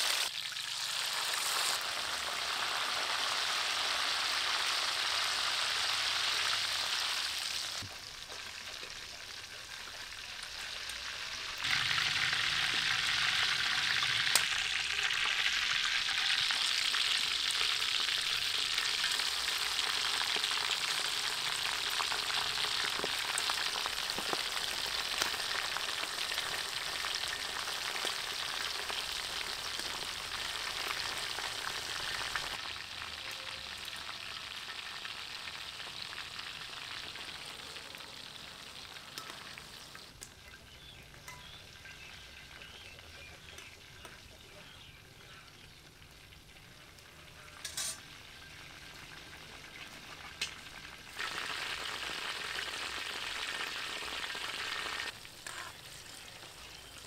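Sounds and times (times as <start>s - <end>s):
shrimp sizzling in hot oil: 0.0s - 57.0s.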